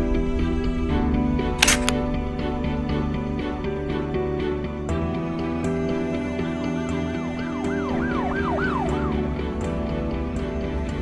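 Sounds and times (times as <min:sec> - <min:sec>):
background music: 0:00.0 - 0:11.0
siren yelp: 0:07.6 - 0:09.2.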